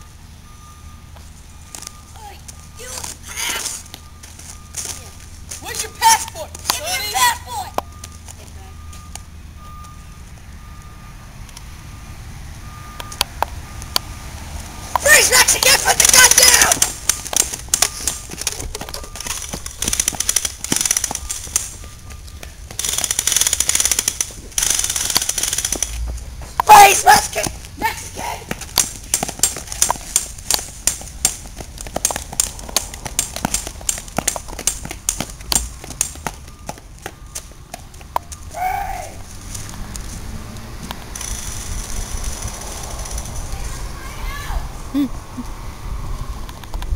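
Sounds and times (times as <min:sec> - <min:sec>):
loud shouting voices: 0:15.0 - 0:16.9, 0:26.6 - 0:28.6, 0:38.5 - 0:39.2, 0:43.6 - 0:44.8.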